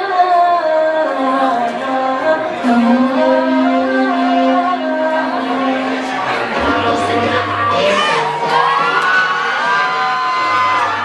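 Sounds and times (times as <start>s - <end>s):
loud music over sound system: 5.1s - 11.0s
audience cheering and whooping: 7.8s - 11.0s.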